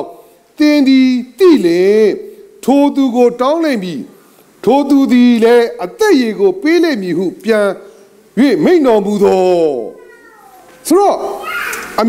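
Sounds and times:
man preaching: 0.0 - 10.0, 10.8 - 12.0.

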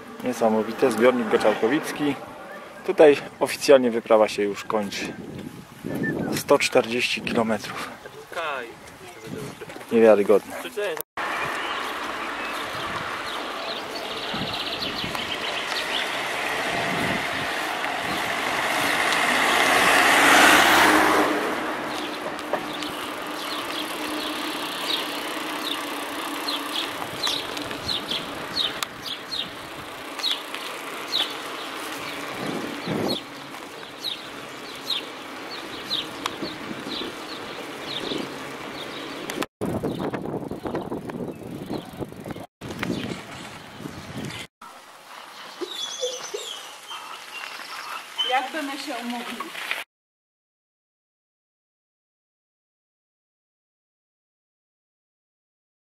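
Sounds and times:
motor vehicle passing: 0.0 - 3.4, 11.2 - 43.7
wind and road noise: 0.0 - 49.8.

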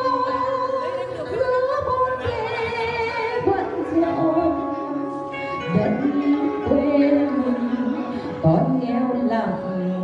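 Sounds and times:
backing music: 0.0 - 10.0
woman singing into a microphone: 0.0 - 10.0.

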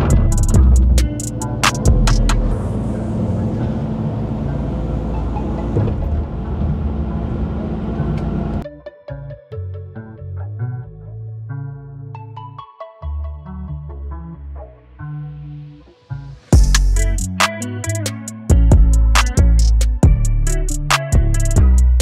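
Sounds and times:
music with picked notes: 0.0 - 2.6, 8.6 - 22.0
diesel engine running: 0.0 - 8.6.

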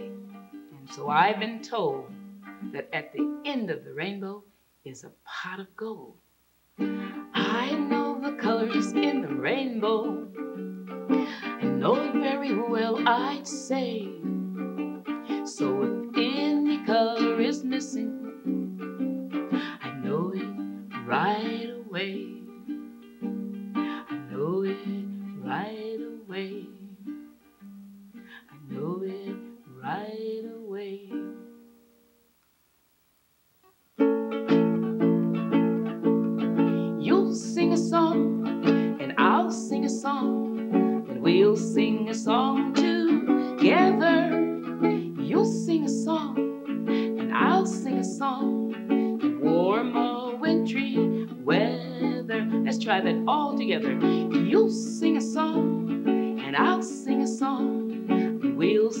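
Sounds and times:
ukulele strumming: 0.0 - 4.3, 6.8 - 32.0, 34.0 - 59.0.

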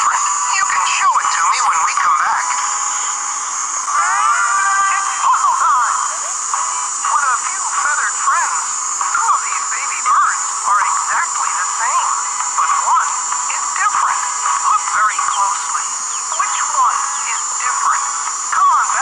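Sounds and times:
person talking over music: 3.9 - 19.0.

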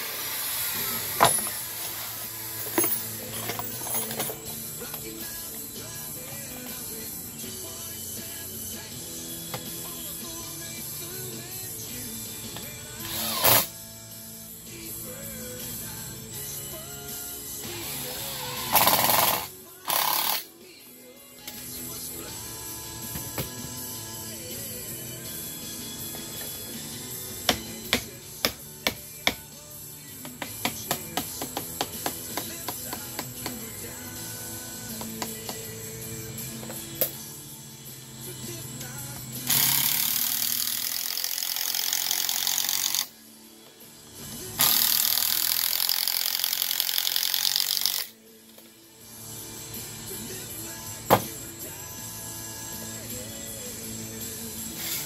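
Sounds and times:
power drill driving screw: 0.0 - 4.4, 13.0 - 13.7, 17.7 - 20.5, 39.5 - 43.1, 44.6 - 48.1
background music: 0.0 - 55.0.

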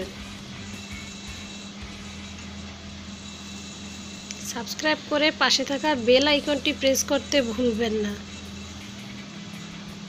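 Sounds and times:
woman speaking: 4.4 - 8.3.

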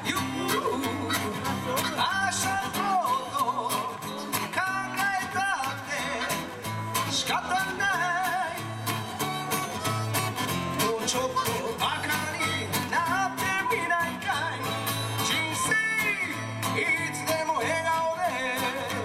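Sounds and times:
man singing into a microphone: 0.0 - 10.0, 10.6 - 19.0
acoustic guitar strumming: 0.0 - 19.0.

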